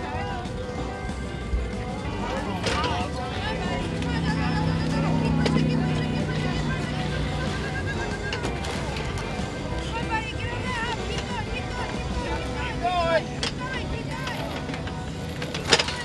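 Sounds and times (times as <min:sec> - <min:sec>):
crowd voices: 0:00.0 - 0:16.0.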